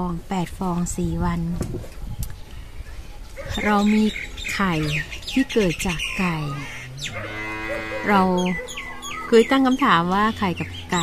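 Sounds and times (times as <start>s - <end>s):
low drawn-out animal call: 3.4s - 11.0s.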